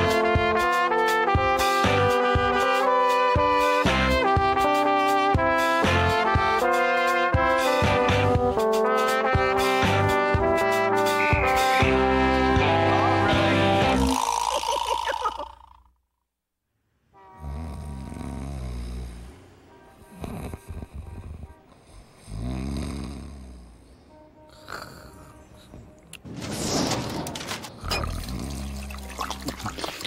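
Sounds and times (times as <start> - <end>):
brassy instrumental music: 0.0 - 14.1
man snoring: 13.8 - 15.9, 17.4 - 19.4, 20.1 - 25.4.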